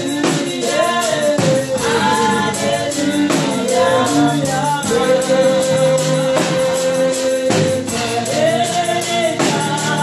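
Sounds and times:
tambourine jingle: 0.0 - 10.0
woman singing gospel: 0.0 - 10.0.

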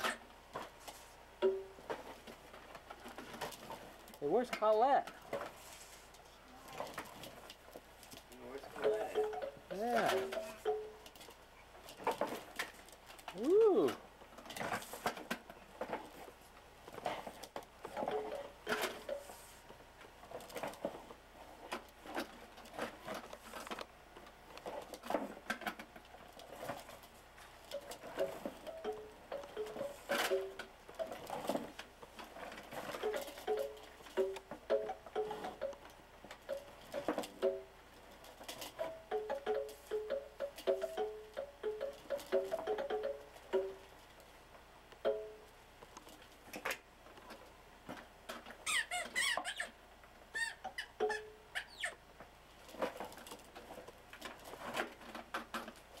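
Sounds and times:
squeaky toy notes: 48.6 - 52.0
plastic knocks and clatter: 52.7 - 56.0.

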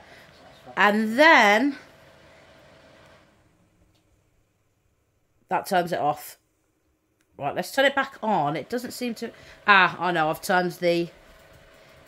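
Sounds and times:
small fan whirring and humming: 0.0 - 4.9, 7.1 - 12.0.

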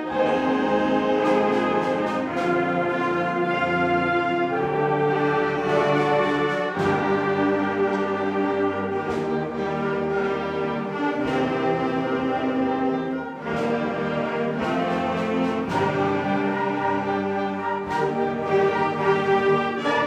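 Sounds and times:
concert band playing: 0.0 - 20.0.

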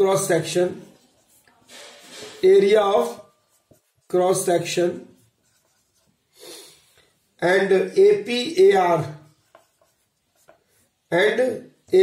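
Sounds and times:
marker scratching on whiteboard: 0.0 - 12.0.

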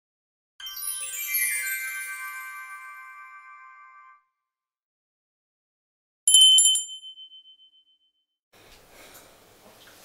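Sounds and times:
high metallic bell ringing: 6.3 - 8.1.

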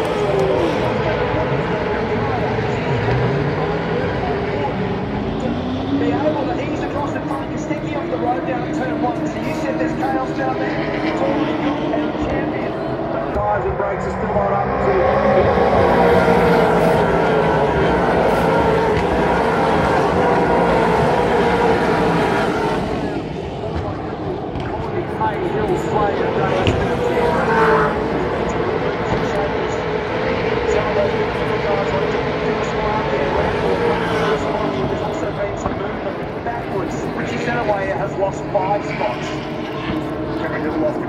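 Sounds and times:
race car engines at full throttle: 0.0 - 41.0.

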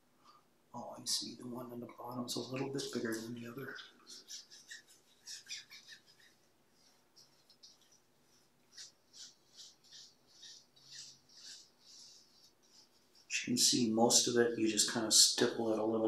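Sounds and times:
brush dabbing resin: 1.1 - 16.0.

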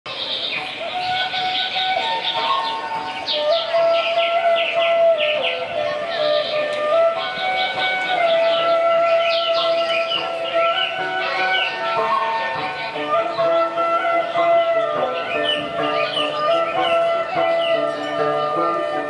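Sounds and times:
flute-like pipe melody: 0.1 - 19.0
high chirping calls: 0.1 - 19.0.

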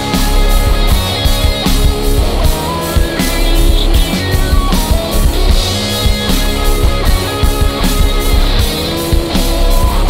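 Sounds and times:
bass guitar: 0.0 - 10.0
drum kit steady beat: 0.0 - 10.0
fuzz-distorted electric guitars: 0.0 - 10.0.

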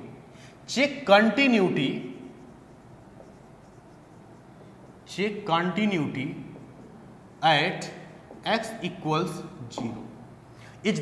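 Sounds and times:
marker pen on whiteboard: 0.0 - 11.0.

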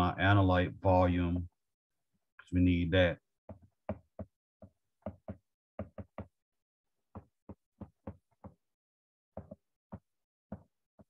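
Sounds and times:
stylus tapping on glass screen: 3.5 - 6.4.

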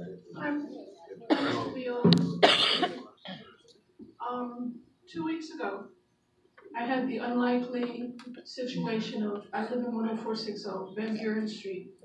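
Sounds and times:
woman clearing her throat: 1.2 - 3.5.

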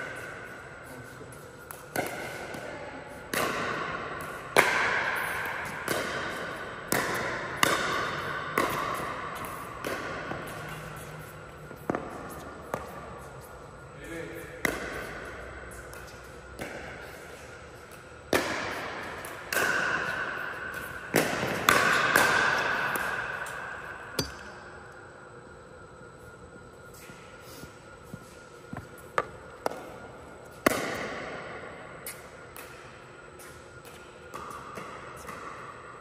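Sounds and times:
pickleball pops echoing: 3.3 - 10.4.

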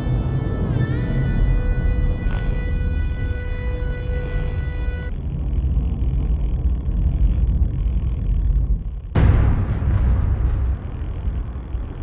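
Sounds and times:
dirt bike engine rumble: 0.0 - 12.0
rough riding noise: 0.0 - 12.0.

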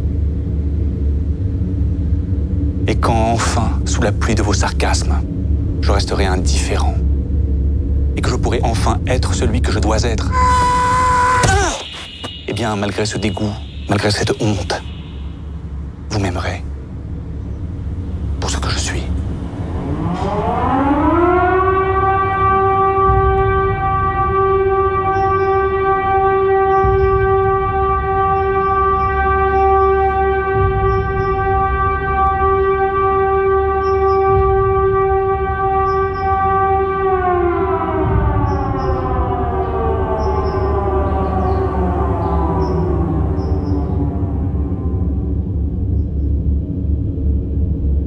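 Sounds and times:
low rumble: 0.0 - 11.0, 12.1 - 48.0
siren-like tone: 10.2 - 16.2, 19.6 - 45.8.

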